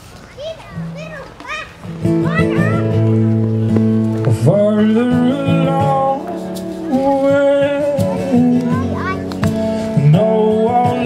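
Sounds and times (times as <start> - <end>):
child calling out: 0.3 - 3.1, 8.1 - 9.3
band playing loudly: 1.8 - 11.0.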